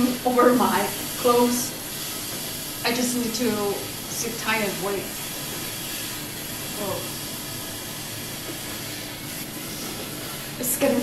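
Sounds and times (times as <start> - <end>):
oil sizzling in a pan: 0.0 - 11.0.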